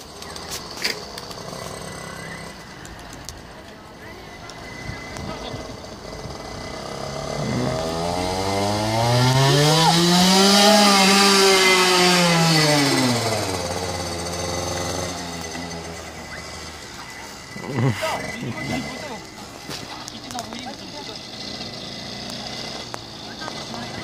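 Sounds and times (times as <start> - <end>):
dirt bike engine passing: 0.2 - 3.0, 4.3 - 24.0.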